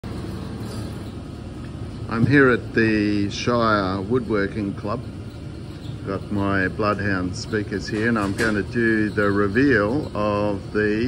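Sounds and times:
faint hum: 0.0s - 11.0s
low machine rumble: 0.0s - 11.0s.

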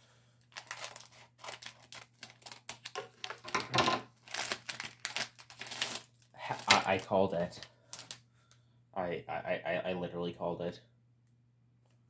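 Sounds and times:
foil crinkling and tearing: 0.5s - 3.6s, 4.2s - 8.2s.

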